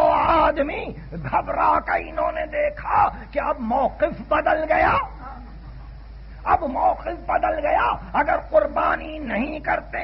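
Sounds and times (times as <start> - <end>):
man's voice: 0.0 - 5.6, 6.4 - 10.0
tape hiss: 0.0 - 10.0.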